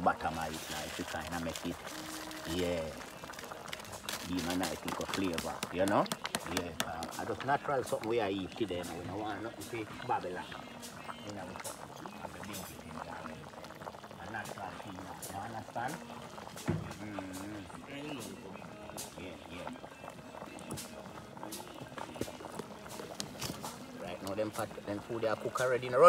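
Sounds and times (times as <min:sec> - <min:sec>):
music: 0:00.0 - 0:26.0
soup boiling and bubbling: 0:00.0 - 0:26.0
voices: 0:00.0 - 0:26.0
wood fire pops and crackles: 0:00.0 - 0:26.0.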